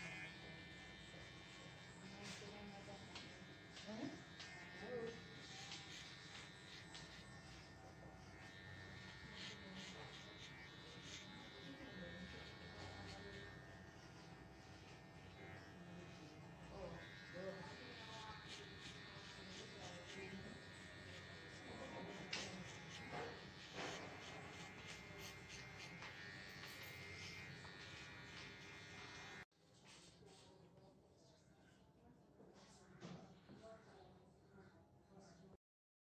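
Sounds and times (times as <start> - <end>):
hair trimmer buzzing: 0.0 - 29.5.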